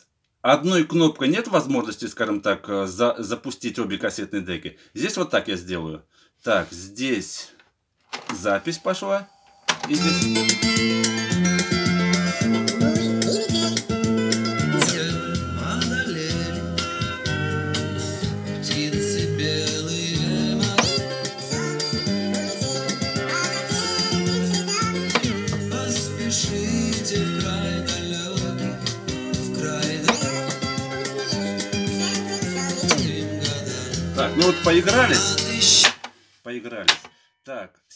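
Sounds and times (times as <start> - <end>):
music from cassette boombox speakers: 8.4 - 36.2.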